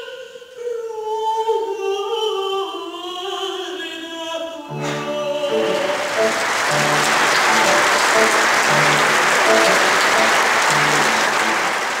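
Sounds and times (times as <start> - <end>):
audience applauding: 4.7 - 12.0
band playing repeating figure: 4.8 - 12.0.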